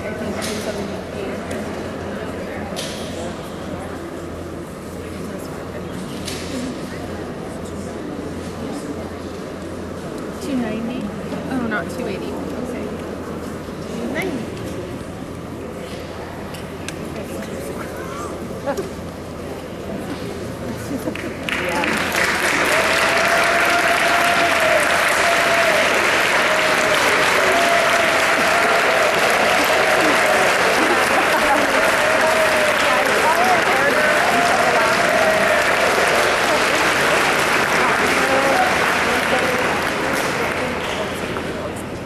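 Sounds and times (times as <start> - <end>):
audience clapping: 21.0 - 41.8
people cheering and whooping: 21.6 - 39.8.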